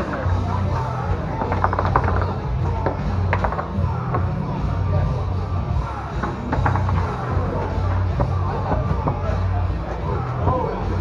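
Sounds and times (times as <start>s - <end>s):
background music with bass: 0.0s - 11.0s
foosball rattle of clicks: 1.3s - 4.3s, 6.2s - 7.4s.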